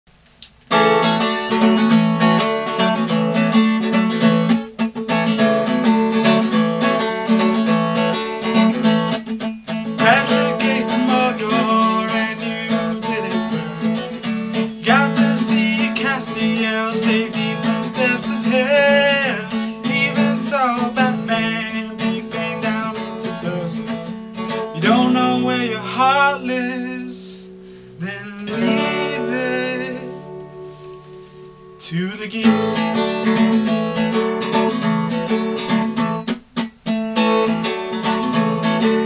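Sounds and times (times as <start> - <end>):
acoustic guitar strumming: 0.1 - 39.0
man singing: 9.7 - 30.4, 31.8 - 33.6.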